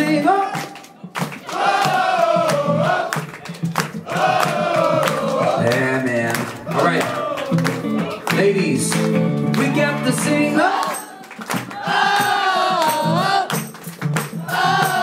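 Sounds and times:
hand claps: 0.5 - 15.0
crowd singing wordless chorus: 1.4 - 8.6, 9.7 - 13.6, 14.4 - 15.0
electric guitar: 5.3 - 11.8.

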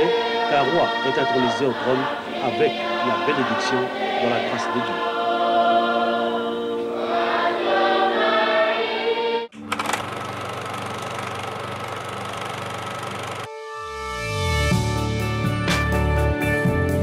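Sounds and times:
choir singing: 0.0 - 9.5
music: 0.0 - 9.9, 13.4 - 17.0.

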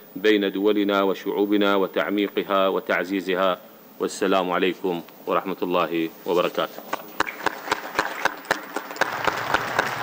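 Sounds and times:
audience applauding: 7.2 - 10.0.

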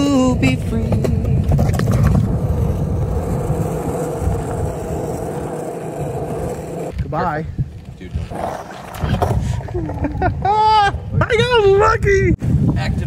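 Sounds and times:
longboard wheels rolling on pavement: 0.0 - 10.5.

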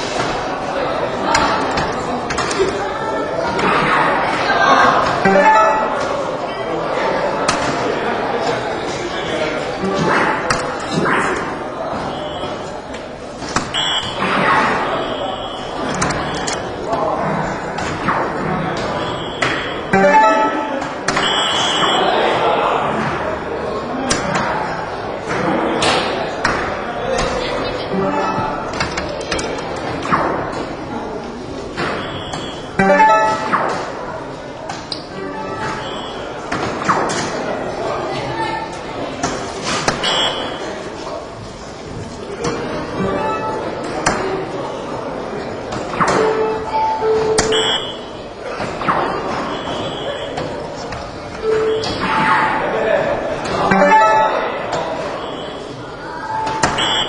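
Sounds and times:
crowd noise: 0.0 - 57.0
high electronic tone: 5.2 - 6.0, 19.0 - 22.0, 32.0 - 33.6, 53.7 - 54.6.

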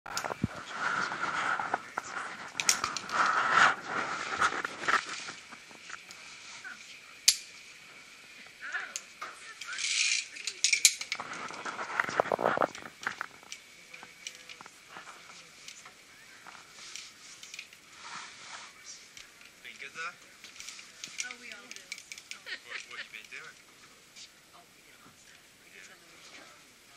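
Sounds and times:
metal carabiner clicks: 9.0 - 11.2.

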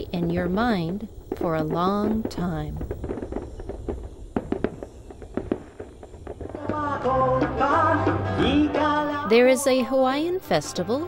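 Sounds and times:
fireworks popping and crackling: 0.0 - 8.9.

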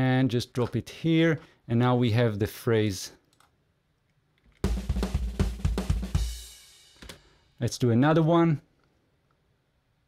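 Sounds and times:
rock drum kit phrase: 4.6 - 7.6.

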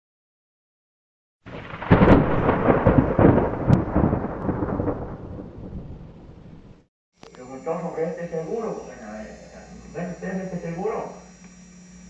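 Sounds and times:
thunder crack and rumble: 1.5 - 6.9.

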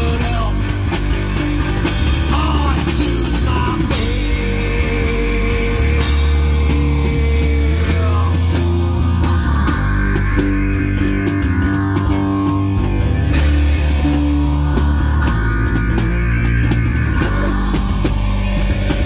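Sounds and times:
bass guitar: 0.0 - 19.0
drum kit and cymbal hits: 0.0 - 19.0
electric guitar: 0.0 - 19.0.

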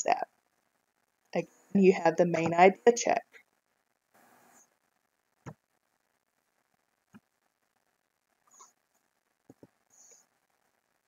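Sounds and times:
soft hiss: 0.0 - 11.0.

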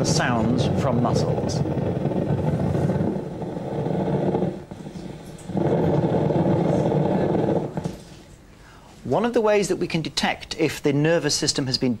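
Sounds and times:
low crackle of muscle signals: 0.0 - 8.4.

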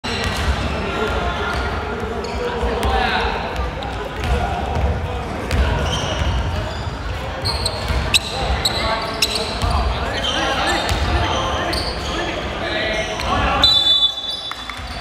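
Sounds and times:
shoe squeaks: 2.2 - 2.5, 5.8 - 15.0.

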